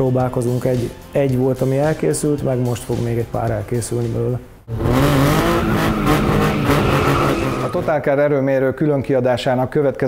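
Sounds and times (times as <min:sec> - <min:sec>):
car engine revving: 0:04.7 - 0:07.9
tyres squealing: 0:05.5 - 0:07.9.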